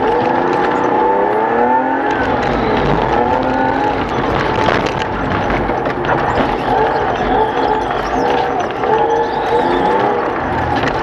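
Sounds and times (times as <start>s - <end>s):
race car engine revving: 0.0s - 11.0s.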